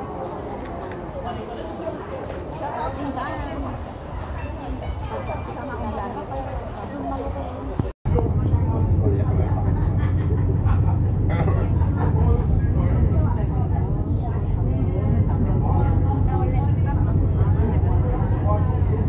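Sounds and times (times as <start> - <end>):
voices chattering: 0.0 - 19.0.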